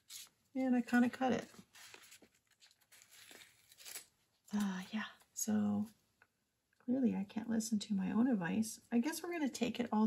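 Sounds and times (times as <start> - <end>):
paper sticker sheet rustling: 0.0 - 4.4.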